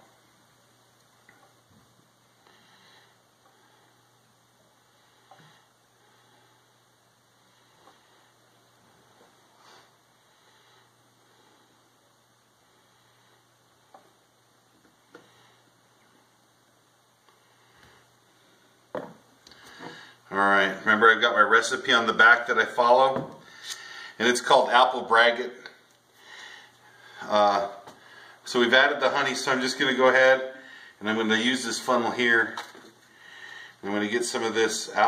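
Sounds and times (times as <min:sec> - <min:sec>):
steady low hum: 0:00.0 - 0:35.0
faint clicks and taps: 0:13.9 - 0:14.2.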